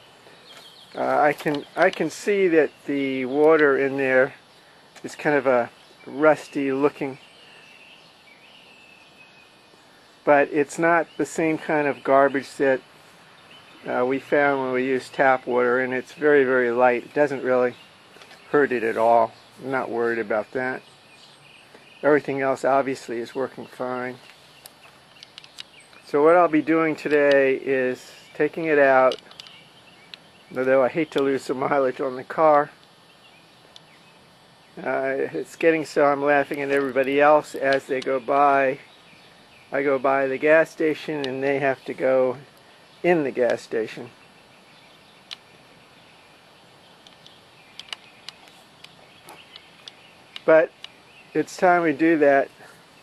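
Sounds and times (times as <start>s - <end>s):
small birds chirping: 0.0s - 53.0s.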